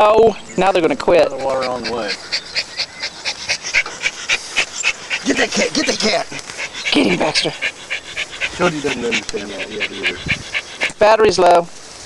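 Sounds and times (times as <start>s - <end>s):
dog panting rapidly: 0.0s - 11.7s.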